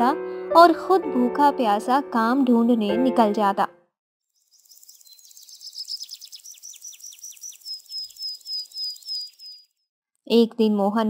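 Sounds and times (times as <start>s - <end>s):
bird chirping: 4.3s - 9.8s.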